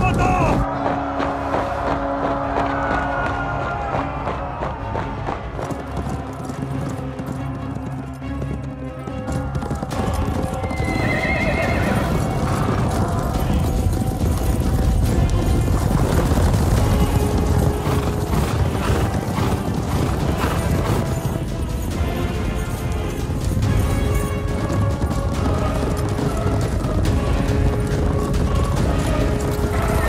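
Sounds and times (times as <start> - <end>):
dramatic film music: 0.0 - 30.0
horses galloping: 0.0 - 30.0
horse neighing: 10.6 - 12.5.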